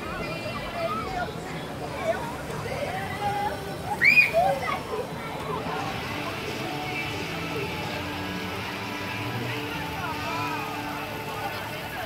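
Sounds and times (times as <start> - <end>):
churning water rushing: 0.0 - 12.0
music: 0.0 - 12.0
people's voices: 0.0 - 12.0.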